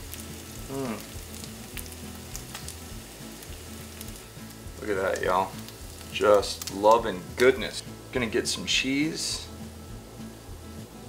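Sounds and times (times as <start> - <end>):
meat sizzling in a frying pan: 0.0 - 10.8.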